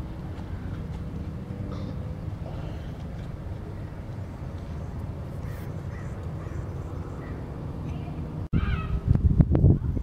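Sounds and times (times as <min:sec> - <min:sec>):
wind rumbling on microphone: 0:03.0 - 0:10.0
crow-like caw: 0:05.4 - 0:07.4.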